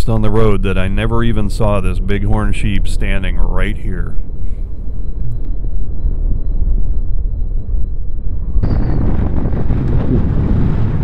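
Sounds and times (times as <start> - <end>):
motorcycle low rumble: 0.0 - 11.0
wind rushing over microphone: 0.0 - 11.0.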